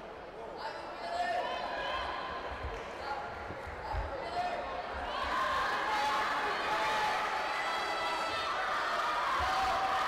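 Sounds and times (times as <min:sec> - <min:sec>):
indistinct voices in echoing hall: 0:00.0 - 0:10.0.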